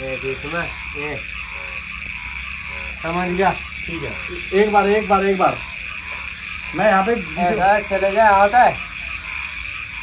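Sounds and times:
frogs calling: 0.0 - 10.0.

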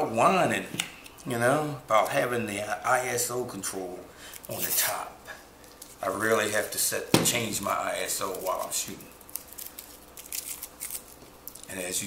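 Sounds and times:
small objects clicking and rustling: 8.1 - 11.8.

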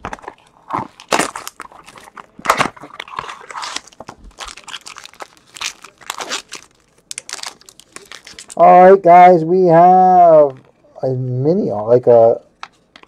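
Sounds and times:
plastic wrapper crinkling and tearing: 0.0 - 8.8.

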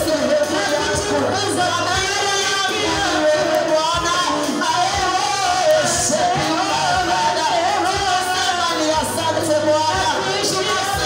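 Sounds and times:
instrumental backing with low beat: 0.0 - 11.0.

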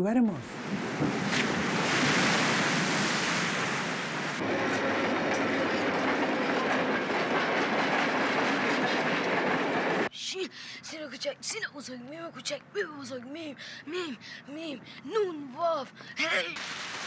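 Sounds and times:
surf crashing: 0.6 - 7.1
train cars rattling over rails: 3.6 - 10.1.

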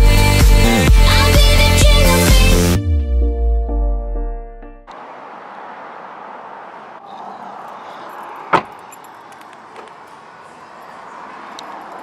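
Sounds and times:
outdoor background noise: 4.9 - 12.0
faint clicks: 11.5 - 11.9.

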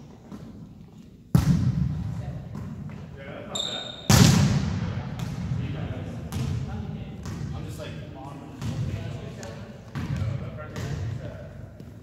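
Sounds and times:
short high squeak: 3.5 - 4.1.

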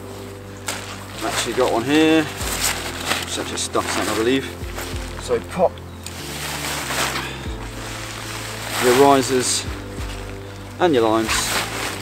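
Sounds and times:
background music with bass line: 0.0 - 12.0
nylon bag and lines rustling: 0.0 - 12.0.

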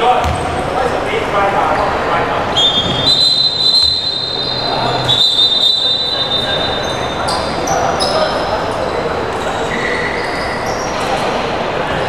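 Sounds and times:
voices echoing in hall: 0.0 - 12.0
basketball bouncing: 0.2 - 0.6
shoes squeaking on court floor: 6.4 - 8.4.

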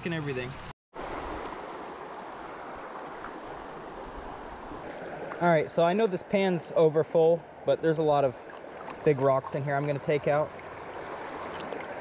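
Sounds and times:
creek running over rocks: 0.1 - 12.0.

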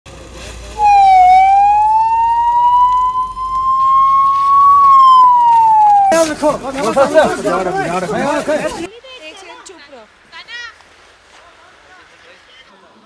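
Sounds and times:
ambulance siren wailing: 0.8 - 6.6.

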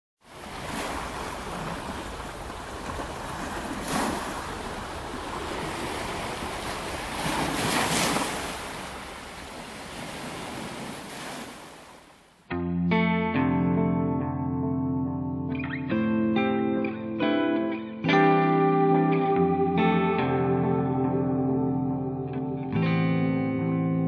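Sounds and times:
sea waves washing on beach: 0.2 - 12.4.

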